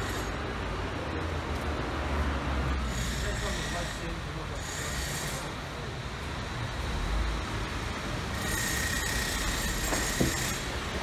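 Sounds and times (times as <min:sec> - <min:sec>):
passing street traffic rumble: 0:00.0 - 0:11.0.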